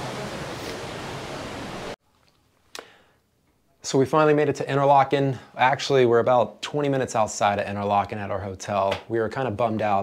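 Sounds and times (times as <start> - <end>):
rushing water or wind: 0.0 - 2.0.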